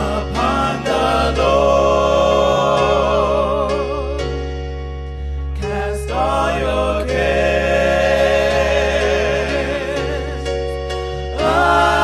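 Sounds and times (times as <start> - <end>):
gospel singing: 0.0 - 12.0.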